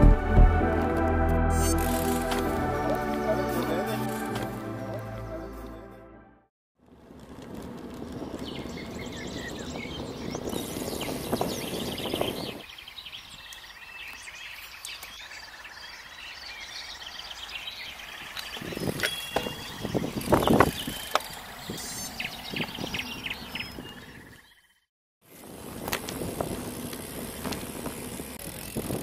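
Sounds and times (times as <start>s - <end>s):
bike road noise: 0.0s - 5.9s, 6.8s - 24.5s, 25.2s - 29.0s
wind noise on microphone: 7.9s - 12.7s, 18.5s - 24.3s, 25.4s - 29.0s
birds singing: 8.1s - 24.9s.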